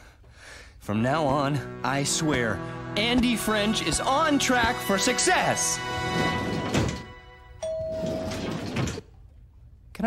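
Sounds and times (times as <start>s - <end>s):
elevator doors sliding shut: 5.9s - 9.0s
elevator bell chime: 7.6s - 8.5s.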